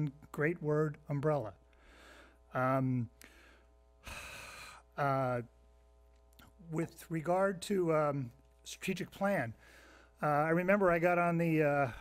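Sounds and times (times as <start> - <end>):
man inhaling into microphone: 1.8 - 2.5, 3.2 - 4.9, 9.6 - 10.2.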